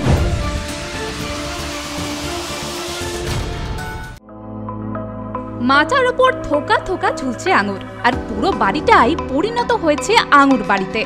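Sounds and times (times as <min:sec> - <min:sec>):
electronic intro music: 0:00.0 - 0:05.2.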